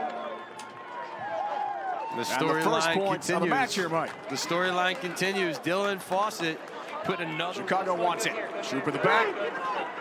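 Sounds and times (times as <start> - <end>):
stadium background noise: 0.0 - 10.0.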